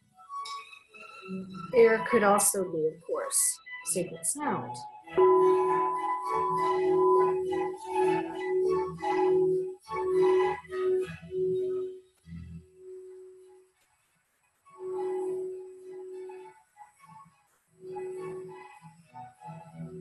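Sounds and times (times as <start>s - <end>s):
singing bowl ringing: 5.2s - 10.5s.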